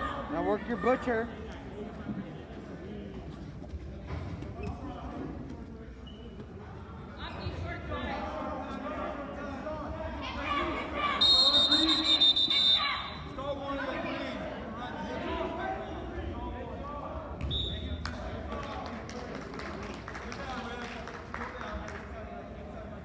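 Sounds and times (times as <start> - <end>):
murmur of spectators: 0.0 - 23.0.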